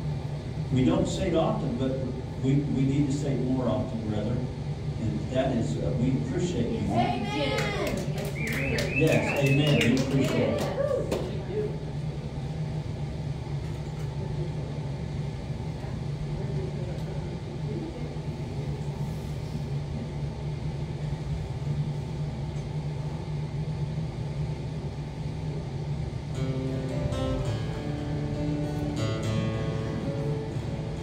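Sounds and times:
low hum: 0.0 - 31.0
acoustic guitar playing: 26.3 - 31.0.

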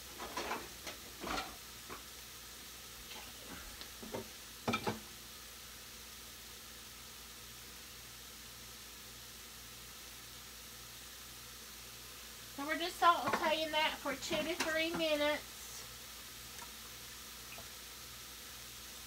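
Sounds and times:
vegetables sizzling in oil: 0.0 - 19.0
person speaking: 12.6 - 15.8.

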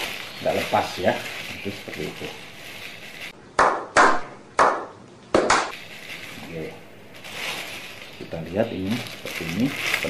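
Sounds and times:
hand claps with room echo: 3.6 - 5.7.

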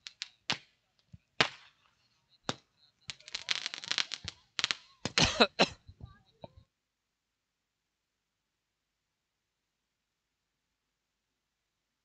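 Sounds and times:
sharp cracks and pops: 0.0 - 5.4.

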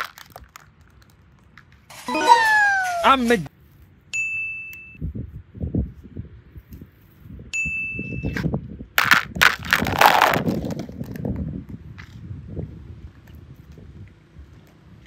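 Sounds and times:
bright ding chime: 4.2 - 5.0.

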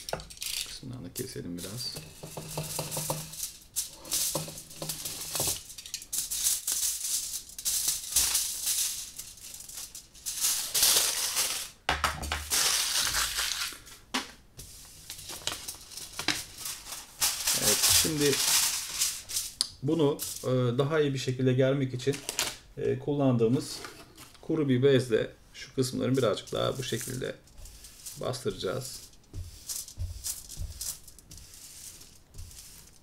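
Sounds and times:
kitchen foil rustling and crinkling: 0.0 - 20.6, 22.0 - 22.6, 25.8 - 33.0.

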